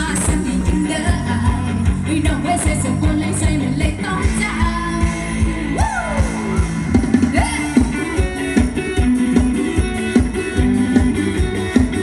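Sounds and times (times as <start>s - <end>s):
live dance band playing: 0.0s - 12.0s
steady drum beat: 4.2s - 12.0s
person singing: 7.2s - 8.6s.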